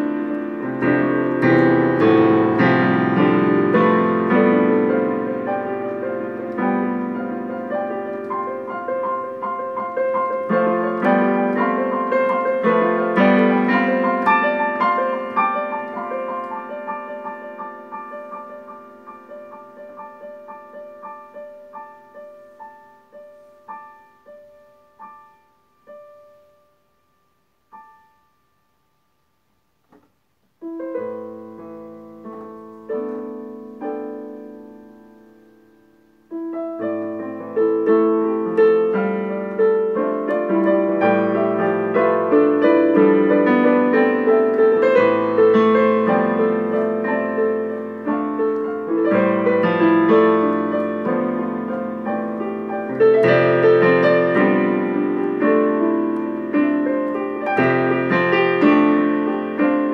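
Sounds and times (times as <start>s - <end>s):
solo digital piano: 0.0s - 59.9s.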